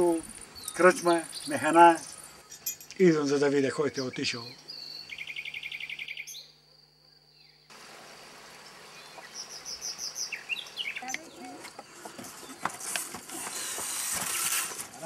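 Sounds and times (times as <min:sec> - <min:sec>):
small bird chirping: 0:00.1 - 0:02.8, 0:03.9 - 0:07.7, 0:08.6 - 0:12.7.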